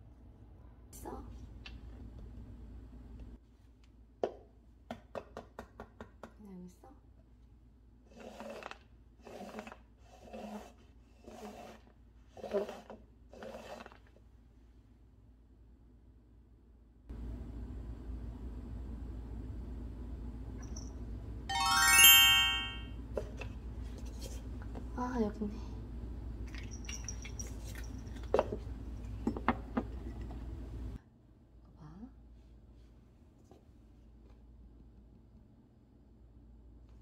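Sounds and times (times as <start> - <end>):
paper cups scraping across floor: 8.1 - 14.2.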